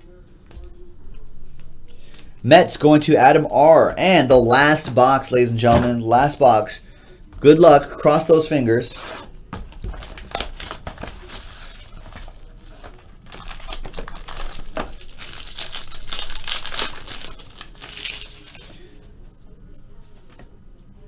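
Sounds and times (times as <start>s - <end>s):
plastic wrapping crinkling and tearing: 9.7s - 18.9s.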